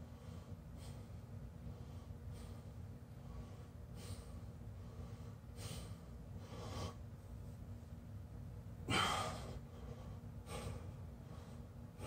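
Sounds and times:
man exhaling forcefully: 8.9 - 9.6.

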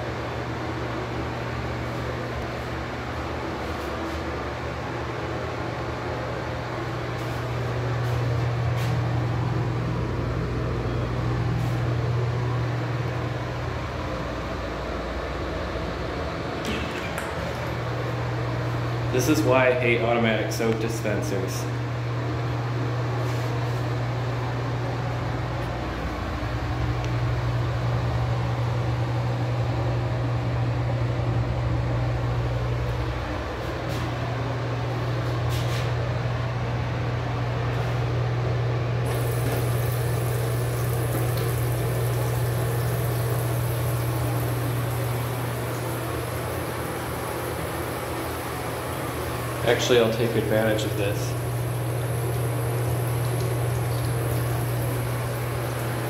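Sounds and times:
ventilation fan humming: 0.0 - 56.0.

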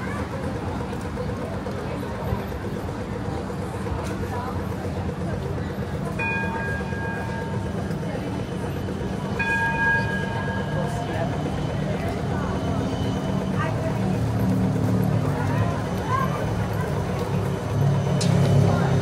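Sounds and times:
street chatter: 0.0 - 19.0
tram running hum: 0.0 - 19.0
tram bell ringing tones: 5.0 - 19.0.

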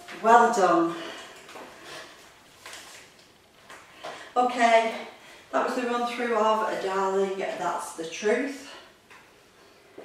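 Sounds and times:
woman speaking: 0.0 - 1.2, 4.4 - 8.9.

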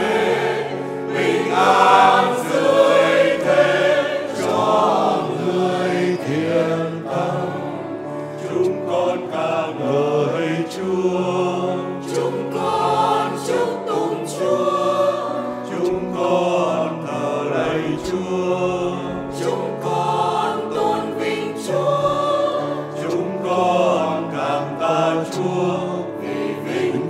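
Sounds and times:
mixed choir singing in harmony: 0.0 - 27.0.

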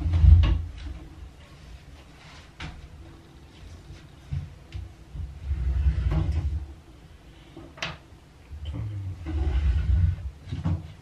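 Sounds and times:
low rumbling scrape: 5.2 - 6.9, 8.6 - 10.5.

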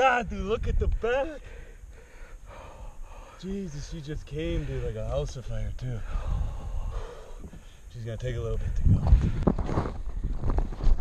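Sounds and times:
wind rumble on microphone: 0.2 - 1.6, 4.1 - 11.0
person breathing out heavily: 1.4 - 3.4, 6.0 - 7.9.

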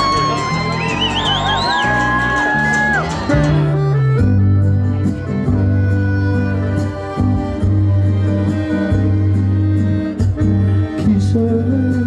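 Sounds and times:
audience member whooping: 0.0 - 3.6
bass line: 0.0 - 12.0
live band music: 0.0 - 12.0
plucked string instrument: 0.0 - 12.0.

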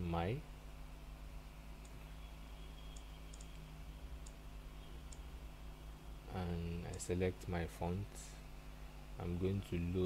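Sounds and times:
faint steady hum: 0.0 - 10.0
light sharp clicks: 2.9 - 4.4.

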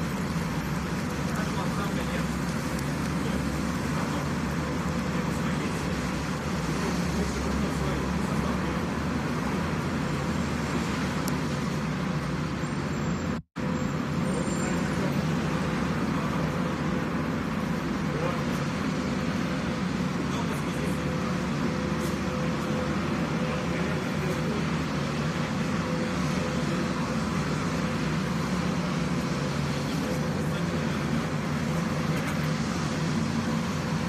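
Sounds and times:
street traffic noise: 0.0 - 34.0.

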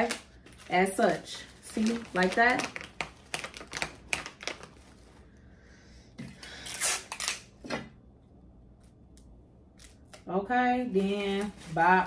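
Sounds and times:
crinkly packaging rustle: 0.0 - 5.4, 11.0 - 12.0.

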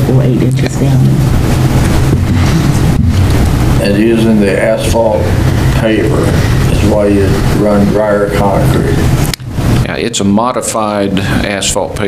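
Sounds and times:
low hum: 0.0 - 10.2
steady hiss: 0.0 - 12.0.

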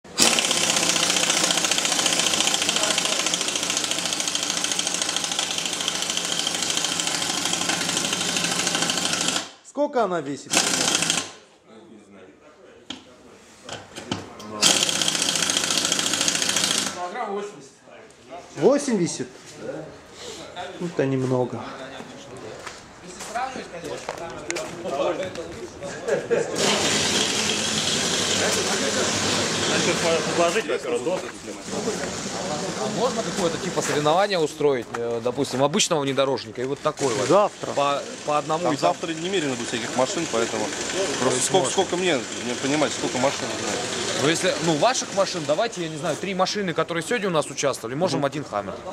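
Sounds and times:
pneumatic impact wrench rattling: 0.1 - 9.6, 10.5 - 11.4, 14.6 - 17.0, 26.6 - 30.6, 37.0 - 46.0
men talking: 11.6 - 14.7, 16.9 - 48.9.

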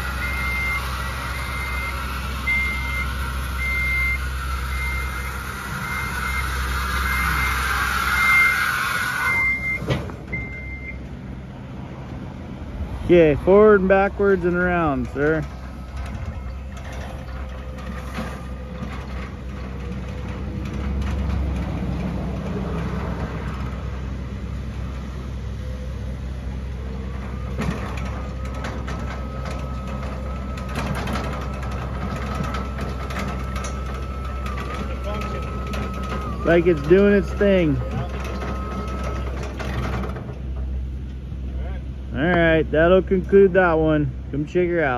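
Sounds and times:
electric lift drive humming: 0.0 - 12.8, 13.4 - 41.4
steady low rumble: 9.4 - 29.2.

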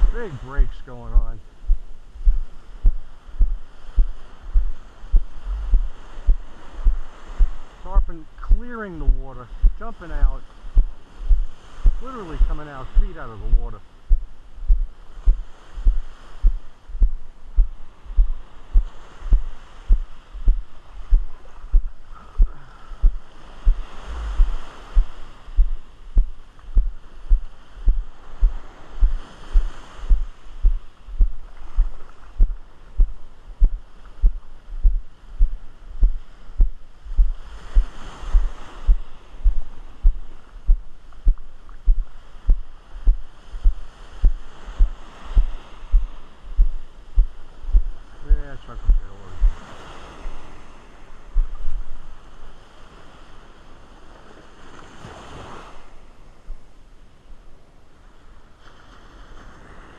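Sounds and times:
surf washing in: 0.0 - 56.5, 57.9 - 59.9
footsteps on sand: 1.6 - 7.7, 8.5 - 48.0, 51.4 - 52.2.

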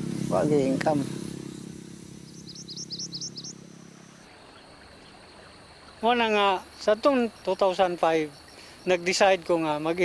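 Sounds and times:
low steady hum: 0.0 - 5.9
small bird chirping: 0.3 - 9.5.

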